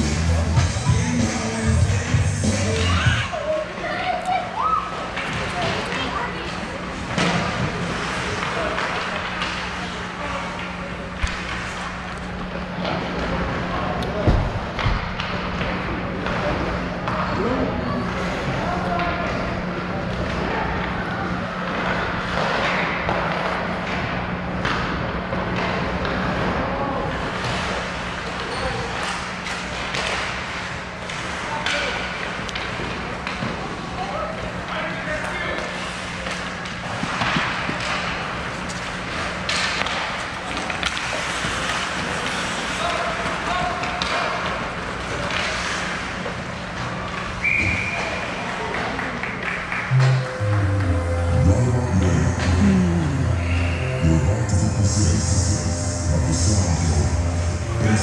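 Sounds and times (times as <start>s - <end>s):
sticks and puck clacking: 7.1s - 13.1s, 27.2s - 34.0s, 35.5s - 47.3s
steady low hum: 49.8s - 58.0s.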